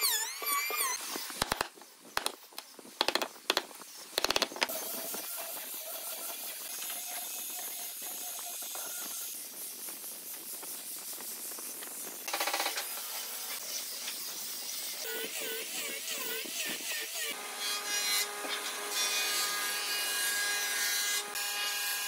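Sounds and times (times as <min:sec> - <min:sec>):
chisel knocking into wood: 0:01.4 - 0:04.7.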